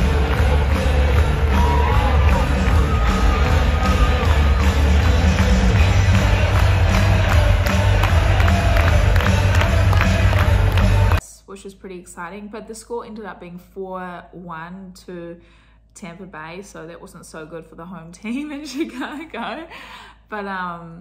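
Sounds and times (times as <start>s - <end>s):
crowd cheering and clapping: 0.0s - 11.2s
music with heavy bass beat: 0.0s - 11.2s.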